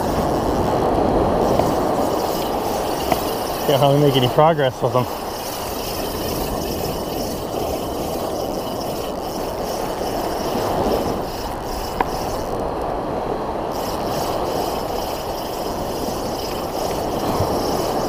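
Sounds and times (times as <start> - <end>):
small waves breaking on beach: 0.0 - 18.0.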